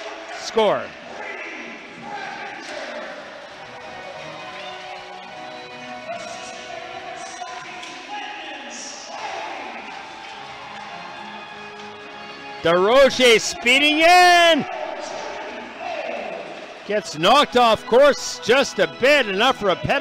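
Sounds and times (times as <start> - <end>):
crowd voices: 0.0 - 20.0
music over arena speakers: 1.7 - 20.0.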